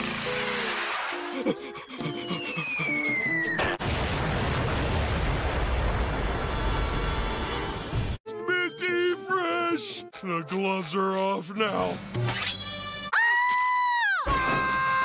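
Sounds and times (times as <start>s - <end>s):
cartoon bomb-drop whistle: 2.1s - 3.8s
explosion with low rumble: 3.8s - 6.6s.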